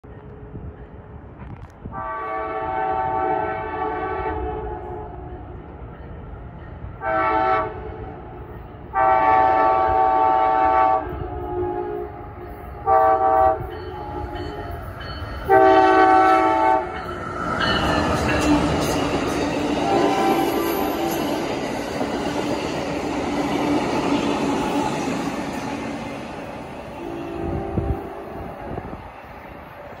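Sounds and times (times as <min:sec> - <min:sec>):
train rumble and rail noise: 0:00.0 - 0:30.0
train air horn blasts: 0:01.9 - 0:05.3, 0:07.0 - 0:08.0, 0:08.9 - 0:14.6, 0:15.4 - 0:17.0, 0:19.8 - 0:21.4, 0:26.9 - 0:28.8.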